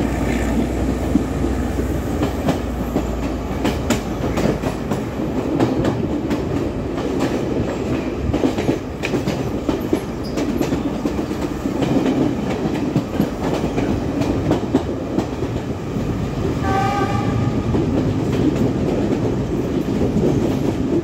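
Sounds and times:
wheels clicking over rail joints: 0:00.0 - 0:15.8
train wheels rumbling on rail: 0:00.0 - 0:21.0.

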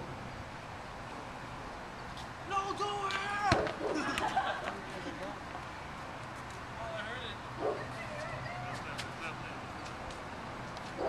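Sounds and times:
dog barking: 0:07.6 - 0:07.9.

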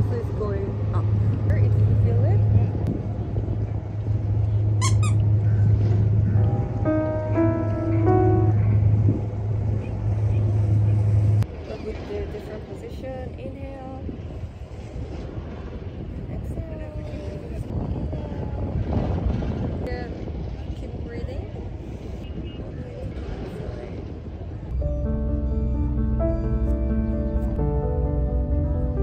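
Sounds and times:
wind rumble on microphone: 0:00.0 - 0:29.0
background music: 0:06.4 - 0:09.4, 0:24.8 - 0:29.0.

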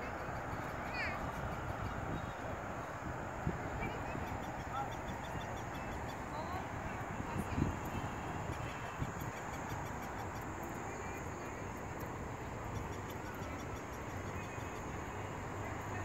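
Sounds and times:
faint chirps: 0:00.0 - 0:16.0
low continuous rumble: 0:00.0 - 0:16.0.

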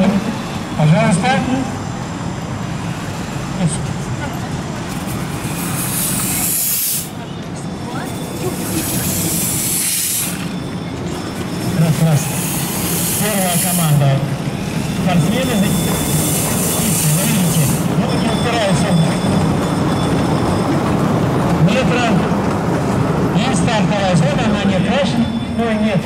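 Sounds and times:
steam hissing: 0:05.1 - 0:07.2, 0:08.1 - 0:10.6, 0:11.8 - 0:18.0.

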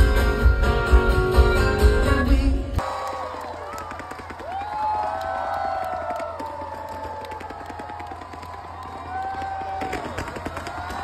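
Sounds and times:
crowd cheering and screaming: 0:02.8 - 0:11.0
fireworks popping and crackling: 0:03.6 - 0:11.0.

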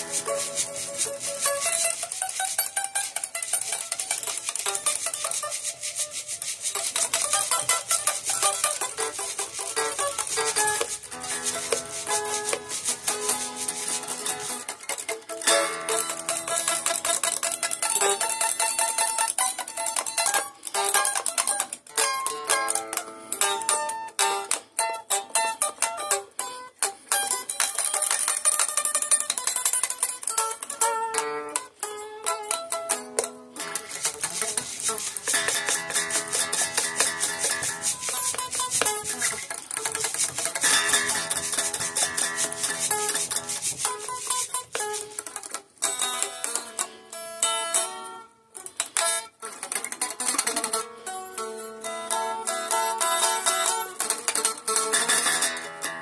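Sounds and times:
electric guitar playing: 0:00.0 - 0:05.2, 0:07.3 - 0:18.4, 0:30.6 - 0:48.3.

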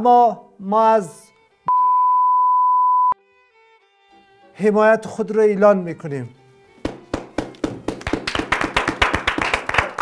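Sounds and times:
people clapping: 0:06.8 - 0:10.0.

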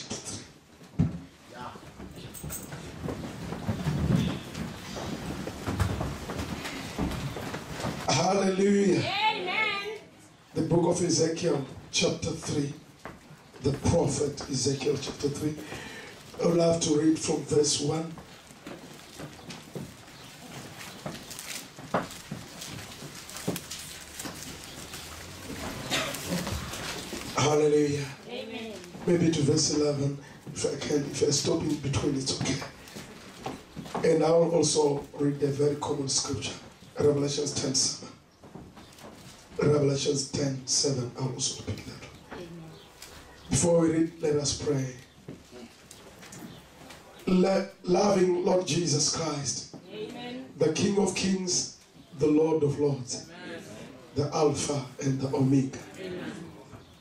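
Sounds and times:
paper pages rustling: 0:18.1 - 0:28.2.

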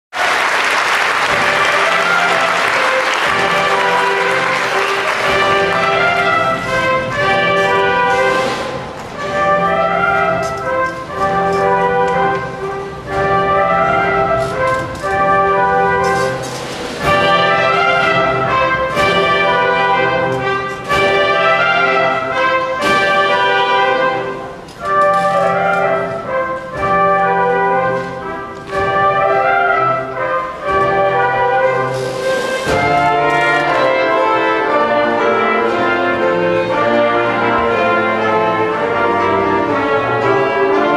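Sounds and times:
audience applause: 0:00.1 - 0:08.6
pit orchestra brass music: 0:00.1 - 0:40.9.

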